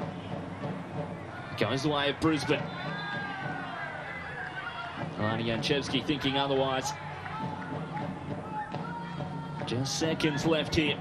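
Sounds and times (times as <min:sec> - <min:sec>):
football crowd ambience: 0:00.0 - 0:11.0.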